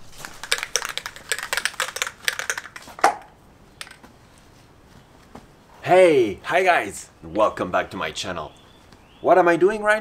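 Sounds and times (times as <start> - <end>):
spray can rattling when shaken: 0.0 - 3.1.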